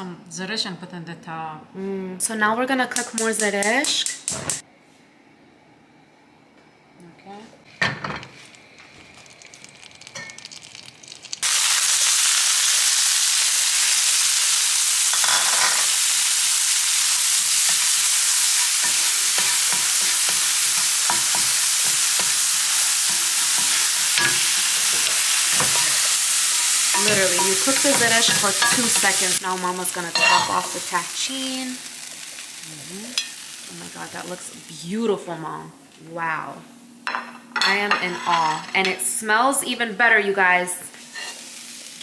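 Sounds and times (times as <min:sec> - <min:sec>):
berries sizzling in butter: 0:08.2 - 0:35.5, 0:37.7 - 0:42.0.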